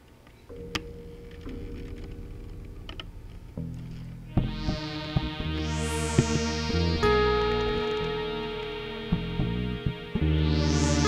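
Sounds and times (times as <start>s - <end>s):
blues music: 0.5s - 11.0s.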